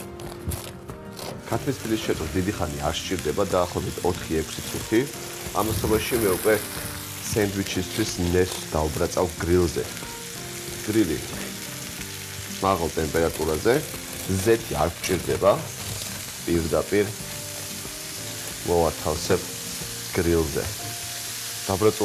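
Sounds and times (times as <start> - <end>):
food sizzling on grill pan: 0.0 - 22.0
person talking: 1.5 - 9.9, 18.6 - 19.5.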